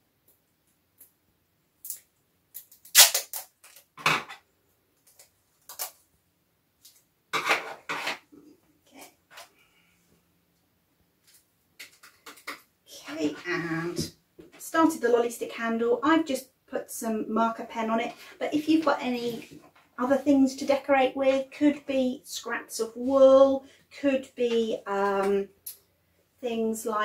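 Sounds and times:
sticky tape clicks and crinkles: 1.8 - 4.0, 5.0 - 6.0
woman speaking: 12.9 - 25.5, 26.4 - 27.0.

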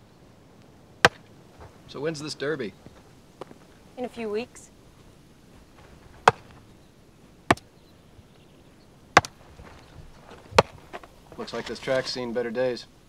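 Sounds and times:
sharp knocks: 6.2 - 6.6.

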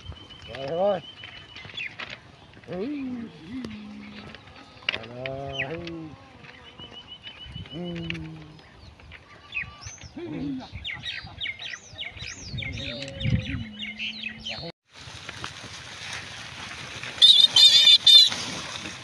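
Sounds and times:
birds chirping: 0.0 - 14.7
human calls: 2.6 - 6.2, 7.6 - 8.7, 9.3 - 11.4
pigs rustling through plants: 14.9 - 19.0
pig squeals: 17.2 - 18.3.

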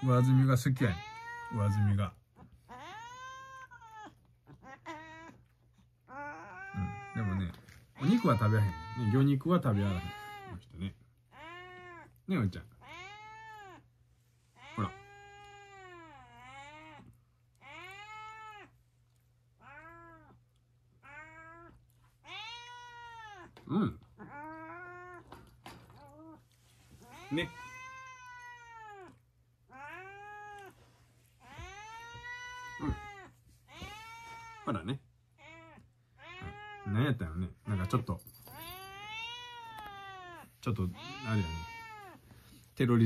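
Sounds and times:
cat meowing: 0.0 - 2.0, 2.7 - 10.6, 11.3 - 12.2, 12.8 - 13.9, 14.6 - 18.8, 19.6 - 20.4, 21.0 - 26.4, 27.0 - 30.8, 31.4 - 34.8, 35.4 - 42.2.

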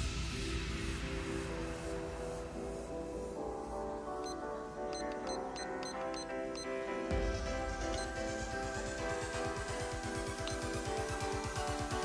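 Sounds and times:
background music: 0.0 - 12.0
kitchen timer short high beeps: 5.0 - 6.3.

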